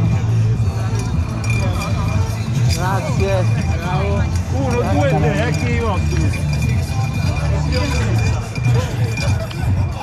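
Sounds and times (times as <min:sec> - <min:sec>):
background music: 0:00.0 - 0:10.0
people talking: 0:00.7 - 0:10.0.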